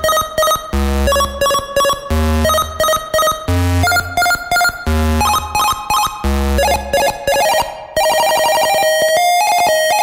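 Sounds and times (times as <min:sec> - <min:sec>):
square-wave beep melody: 0:00.0 - 0:10.0.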